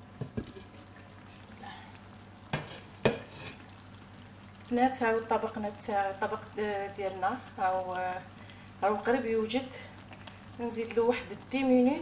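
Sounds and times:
stew simmering with sizzling hiss: 0.0s - 12.0s.

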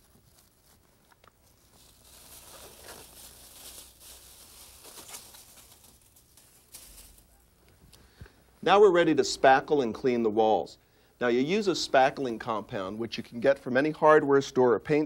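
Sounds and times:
plastic sheet crinkling: 0.0s - 7.5s.

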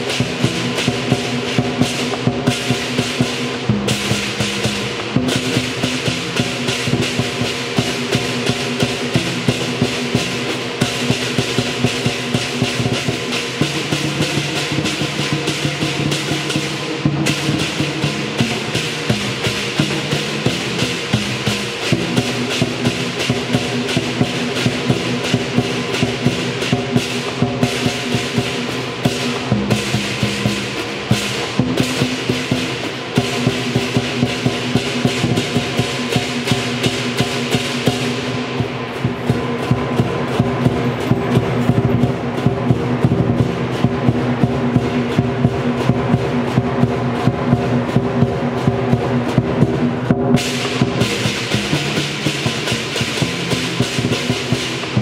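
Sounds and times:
gong: 0.0s - 55.0s
hand cymbals clashing: 0.0s - 55.0s
large drums beating: 0.0s - 55.0s.

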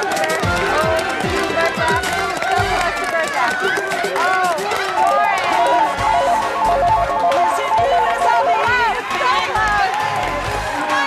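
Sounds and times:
people clapping: 0.0s - 11.0s
people shouting and whooping: 0.0s - 11.0s
upbeat game-show music: 0.0s - 11.0s
electronic two-note melody: 5.4s - 9.7s.

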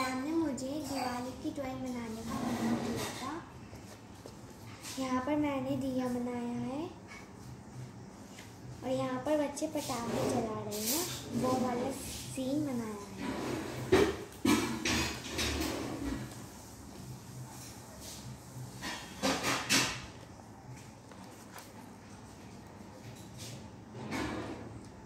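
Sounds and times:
paper pages rustling: 20.7s - 22.7s.

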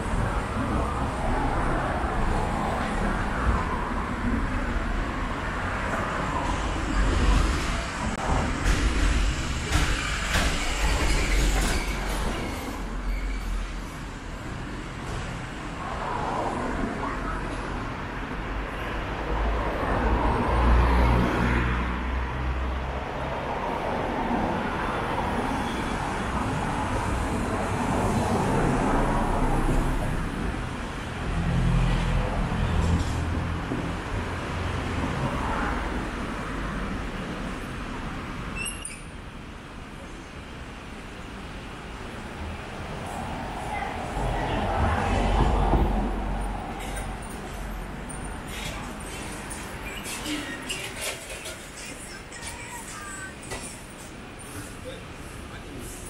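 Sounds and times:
cars passing on road: 0.0s - 56.0s.

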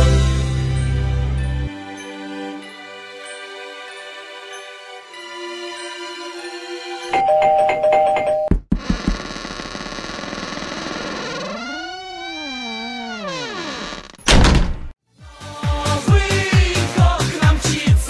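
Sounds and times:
two-tone doorbell chime: 7.1s - 8.5s
thunk: 14.3s - 14.9s
upbeat dance music: 15.3s - 18.0s.

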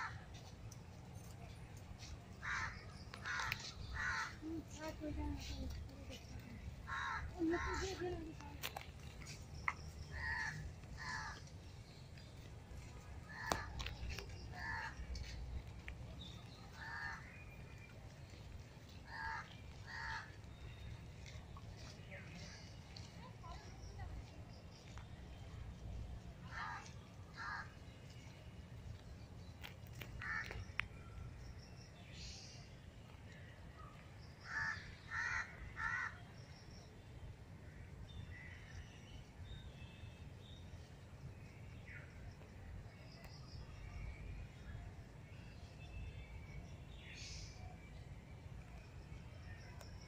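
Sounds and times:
small birds chirping: 0.2s - 25.8s
crow cawing: 2.4s - 4.4s, 6.9s - 7.8s, 10.2s - 11.4s, 14.6s - 15.0s, 19.1s - 20.3s, 26.5s - 27.7s, 30.2s - 30.6s, 34.4s - 36.2s.

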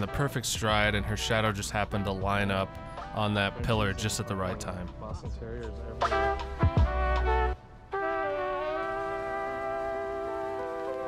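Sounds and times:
sustained music chord: 5.8s - 11.0s.

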